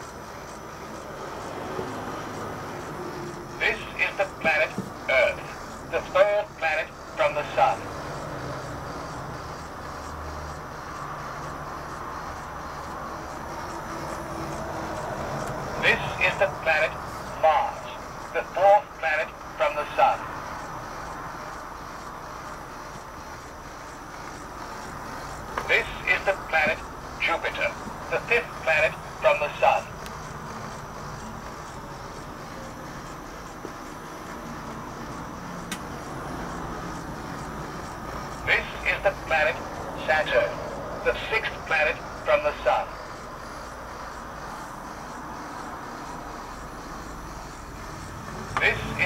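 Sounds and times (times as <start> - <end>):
small electric motor and gears: 0.0 - 49.0.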